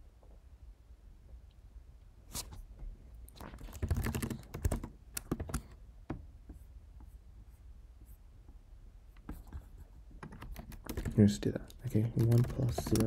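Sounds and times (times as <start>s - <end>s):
computer keyboard typing: 3.4s - 5.8s, 9.3s - 13.0s.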